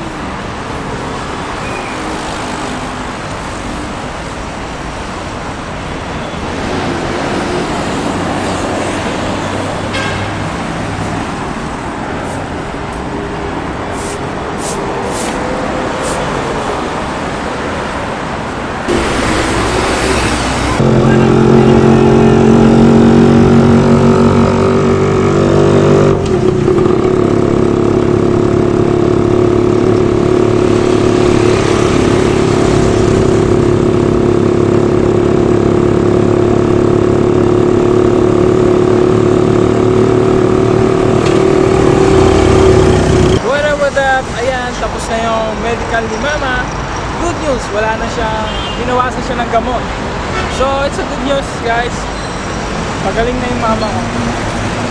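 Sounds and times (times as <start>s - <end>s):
city street traffic: 0.0s - 54.9s
vehicle engine running steadily: 20.7s - 43.4s.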